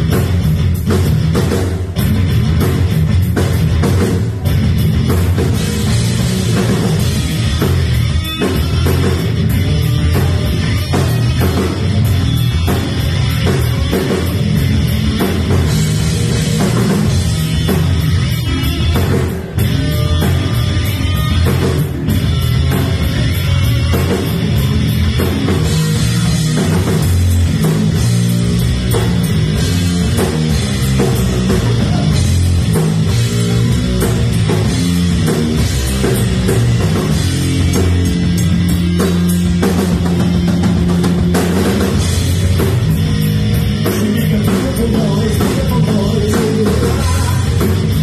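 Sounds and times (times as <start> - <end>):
rock band playing: 0.0 - 48.0.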